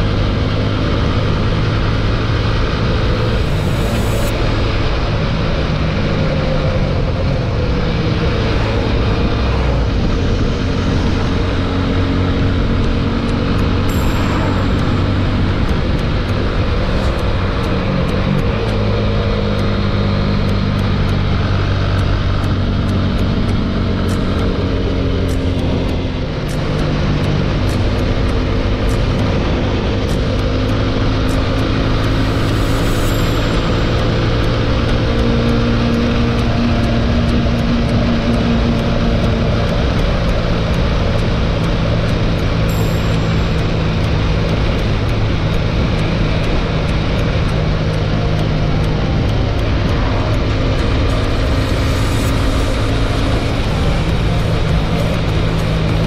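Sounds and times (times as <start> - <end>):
motorcycle engine running: 0.0 - 56.0
wind rush: 0.0 - 56.0.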